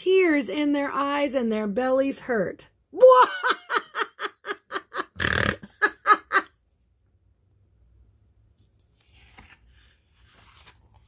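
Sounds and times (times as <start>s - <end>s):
woman's cartoon laugh: 3.0s - 6.6s
woman snorting: 5.0s - 5.9s.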